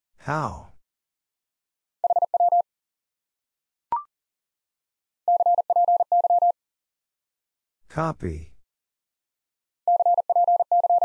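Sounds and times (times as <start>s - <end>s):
morse code beep tone: 2.0s - 2.6s, 5.3s - 6.6s, 9.9s - 11.0s.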